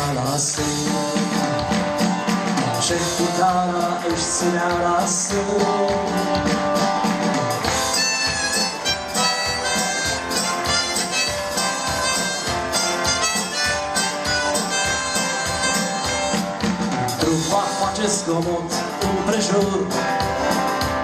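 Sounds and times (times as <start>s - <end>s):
harmonica bending notes: 7.6s - 17.2s.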